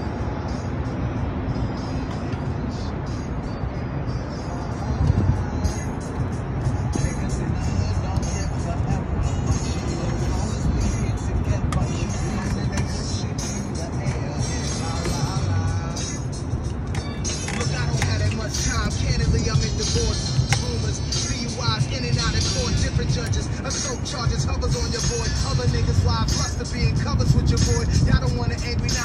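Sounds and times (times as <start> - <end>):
hip-hop beat: 0.0 - 29.0
steady rushing noise: 0.0 - 29.0.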